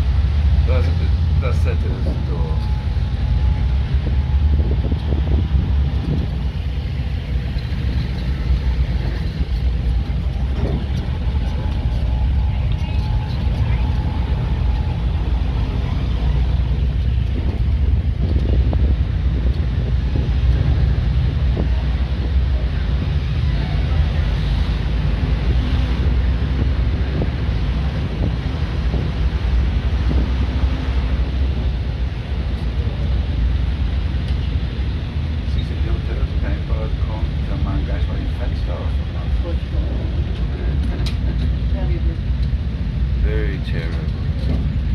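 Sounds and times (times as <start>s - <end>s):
road vehicle rumble: 0.0s - 44.9s.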